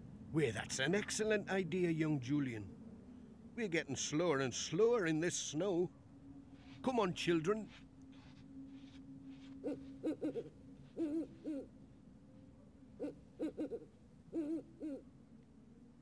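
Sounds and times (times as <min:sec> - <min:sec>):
owl hooting: 0:08.8 - 0:11.7, 0:13.0 - 0:15.1.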